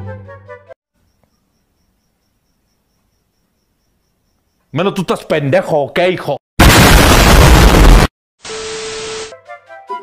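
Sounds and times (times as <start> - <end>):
cricket chirping: 0.9 - 5.0.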